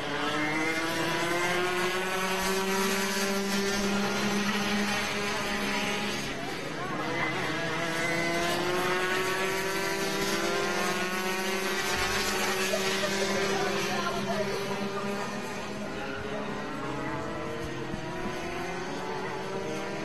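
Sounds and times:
kart engines racing past: 0:00.0 - 0:20.0.

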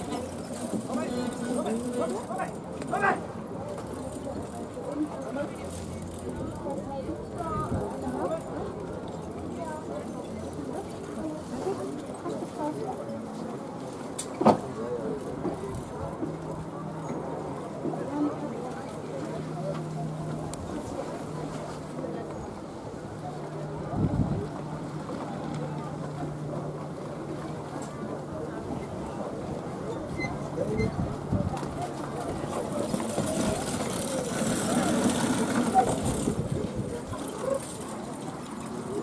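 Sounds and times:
people talking in background: 0:00.0 - 0:39.0.

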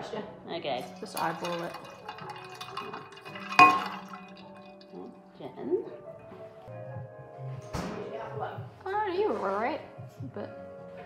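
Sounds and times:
liquid pouring over ice cubes: 0:00.8 - 0:05.1
glass clink: 0:00.8 - 0:05.2.

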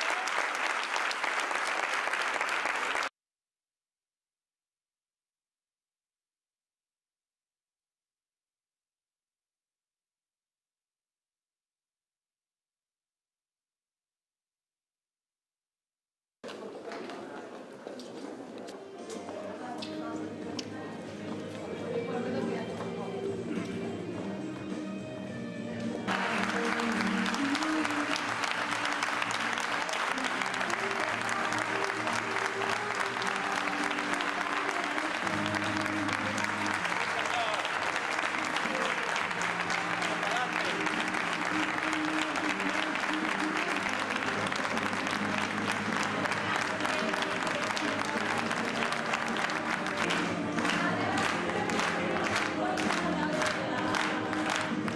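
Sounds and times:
crowd applauding: 0:00.0 - 0:03.1, 0:26.0 - 0:54.9.

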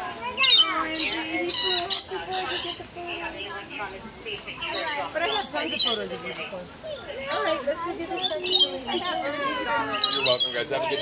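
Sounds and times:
lorikeets squawking: 0:00.2 - 0:11.0.

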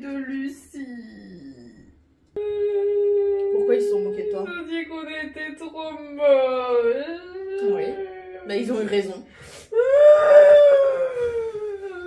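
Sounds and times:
girl wailing cry: 0:06.9 - 0:08.5, 0:09.7 - 0:12.0.

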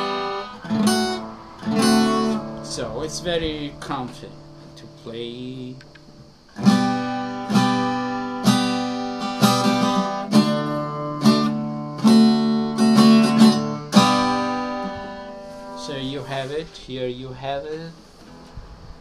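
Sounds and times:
acoustic guitar chords strummed: 0:00.0 - 0:19.0.

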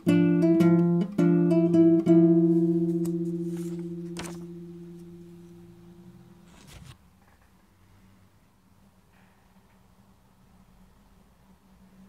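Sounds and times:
acoustic guitar note ringing: 0:00.0 - 0:06.5
handling rustle: 0:02.8 - 0:05.2, 0:06.4 - 0:07.0.

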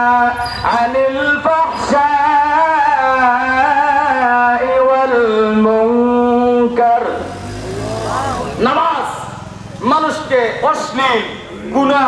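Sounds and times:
man chanting into a microphone: 0:00.0 - 0:07.4.

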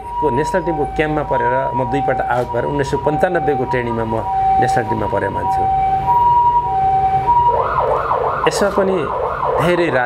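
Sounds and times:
two-tone siren: 0:00.0 - 0:10.0
yelping siren: 0:00.0 - 0:10.0.

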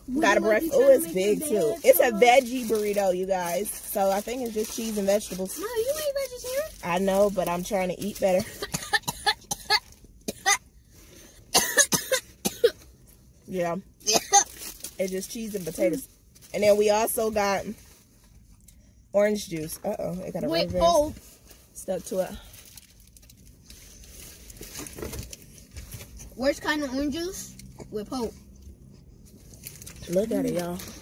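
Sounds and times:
paper wrapper crackling: 0:00.2 - 0:08.2, 0:22.3 - 0:26.2, 0:29.4 - 0:31.0
woman coughing: 0:08.4 - 0:10.6, 0:11.5 - 0:12.8, 0:14.1 - 0:14.5.

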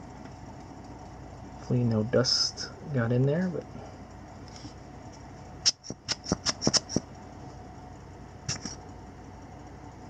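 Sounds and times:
sharp handling ticks: 0:05.6 - 0:07.1.

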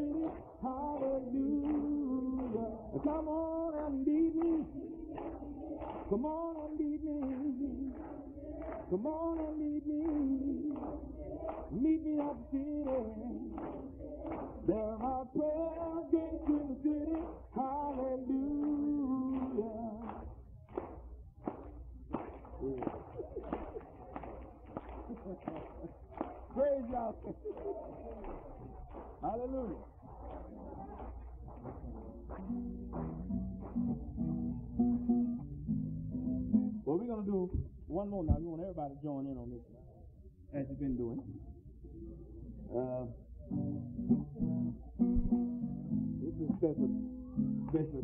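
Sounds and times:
voices singing long notes: 0:00.0 - 0:20.2.

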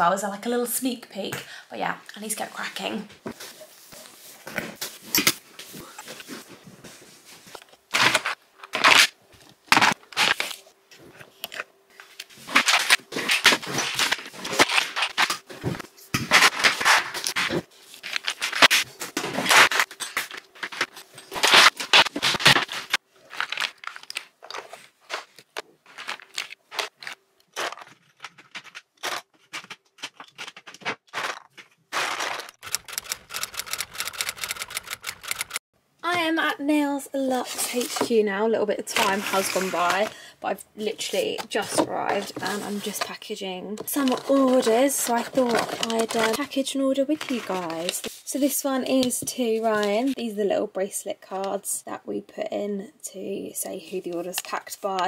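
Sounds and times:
hands scraping and rubbing tabletop: 0:38.9 - 0:40.1.

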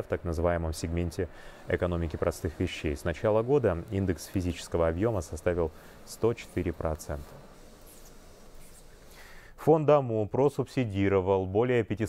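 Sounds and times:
factory background hiss: 0:00.0 - 0:11.1.

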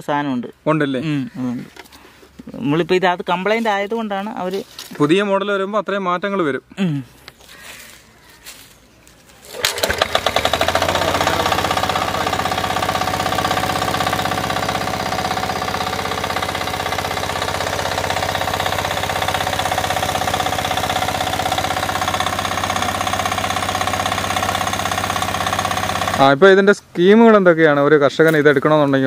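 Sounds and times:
engine rope start: 0:09.4 - 0:26.4
diesel engine chugging: 0:09.6 - 0:26.4.

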